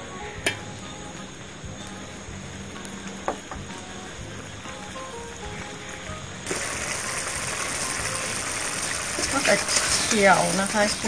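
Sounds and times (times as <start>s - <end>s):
curry sizzling and bubbling in a pot: 4.0s - 11.0s.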